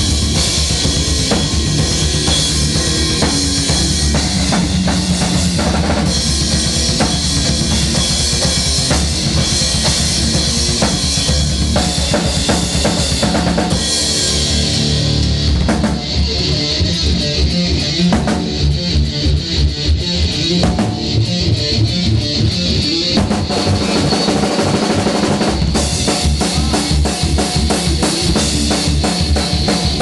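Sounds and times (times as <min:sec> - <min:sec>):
bass guitar: 0:00.0 - 0:30.0
drum kit: 0:00.0 - 0:30.0
electric guitar: 0:00.0 - 0:30.0.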